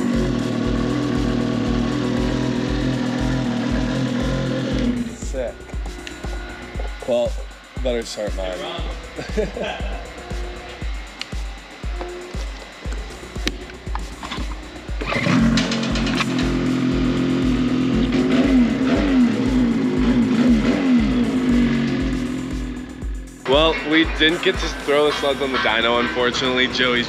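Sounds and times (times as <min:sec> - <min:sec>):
snowmobile engine throttle blips: 0:00.0 - 0:07.4, 0:08.2 - 0:27.0
background music with steady beat: 0:00.0 - 0:27.0.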